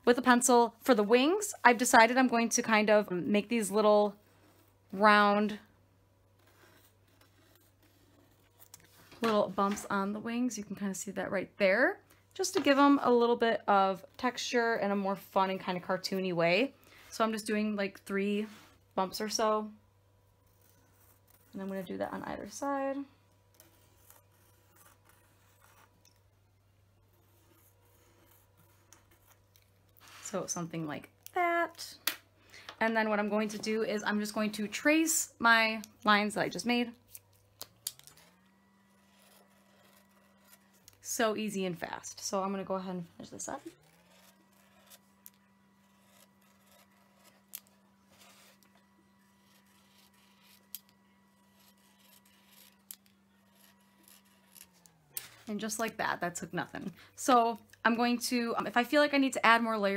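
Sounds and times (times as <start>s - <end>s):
low steady hum: 0.0s - 59.9s
pencil scratching on wood: 6.3s - 8.9s, 20.4s - 22.7s, 23.5s - 26.3s, 27.0s - 30.5s, 38.2s - 55.5s
marker tip scratching on wood: 38.9s - 40.9s, 43.5s - 54.8s.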